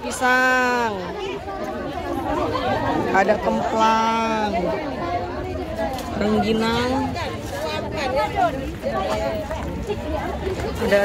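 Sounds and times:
background chatter of voices: 0.0 - 11.0.

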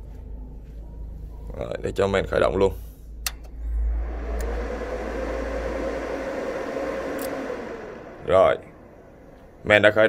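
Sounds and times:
faint hum: 0.0 - 10.0
cooling fans whooshing: 3.1 - 10.0.

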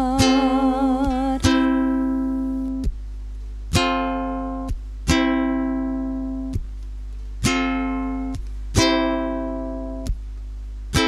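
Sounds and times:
ukulele strummed slowly: 0.0 - 11.0.

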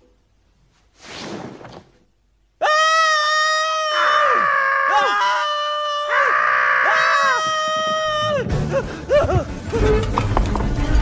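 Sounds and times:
pig character screaming: 2.6 - 8.4.

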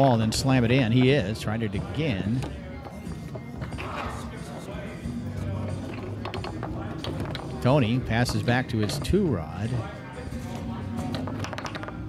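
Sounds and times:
background music: 0.0 - 12.0
foosball ball and rods clacking: 0.0 - 12.0
murmuring voices: 1.6 - 12.0.

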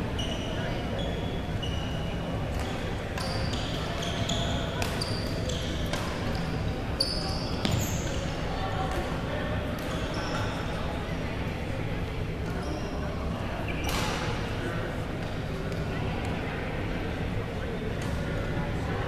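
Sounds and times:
echoing chatter of voices: 0.0 - 19.0
shoe squeaks on court: 0.2 - 8.3, 9.8 - 10.7.

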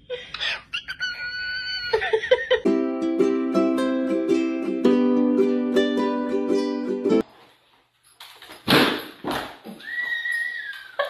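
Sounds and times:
dog whining: 0.4 - 2.2.

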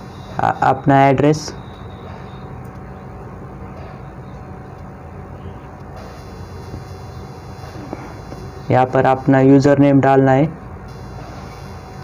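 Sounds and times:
low hum: 0.0 - 9.8.

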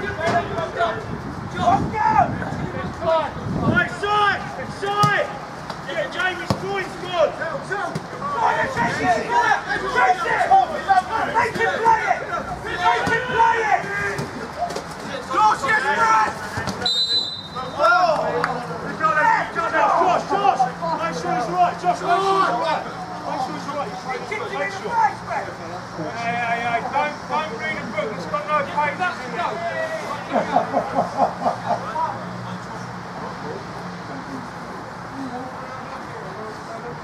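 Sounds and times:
people shouting and calling: 0.0 - 32.2
referee's whistle blast: 16.8 - 17.7.

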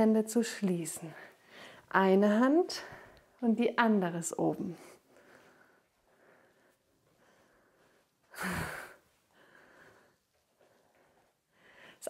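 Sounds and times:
woman breathing while exercising: 1.2 - 1.9, 4.8 - 12.0.

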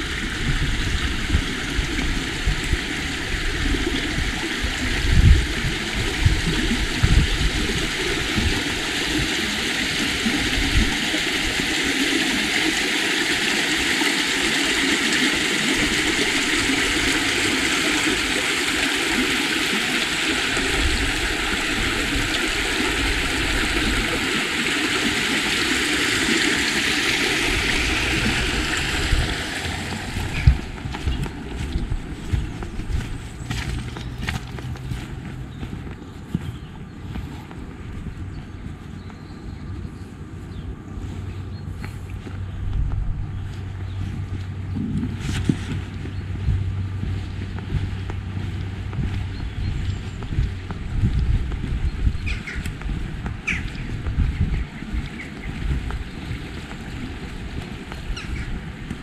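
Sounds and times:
stream water rushing: 0.0 - 36.1, 43.4 - 59.0.

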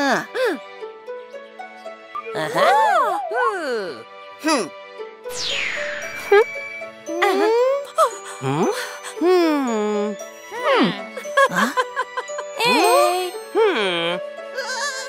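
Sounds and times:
light background music: 0.0 - 15.0
wordless cartoon character voices: 2.2 - 4.8, 12.6 - 14.2
falling whoosh effect: 5.3 - 7.0
jingly chime effects: 5.3 - 7.7.

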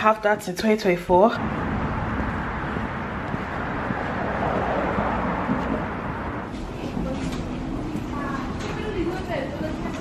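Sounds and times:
distant road traffic: 1.3 - 10.0.

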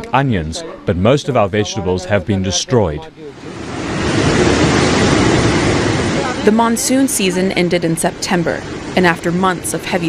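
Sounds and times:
torrent of water rushing: 3.2 - 10.0.

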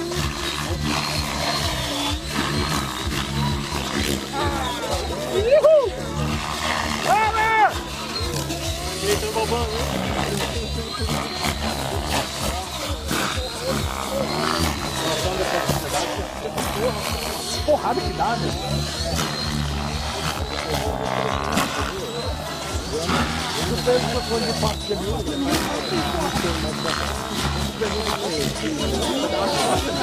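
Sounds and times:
model helicopter rotor whine: 0.0 - 30.0.

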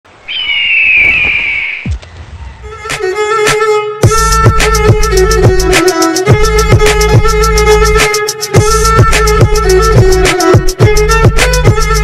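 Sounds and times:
bird of prey screeching: 0.3 - 1.9.

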